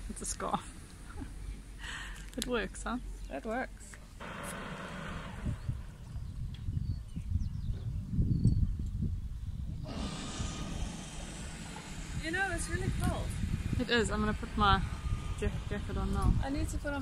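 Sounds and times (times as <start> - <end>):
wind buffeting microphone: 4.2 - 17.0.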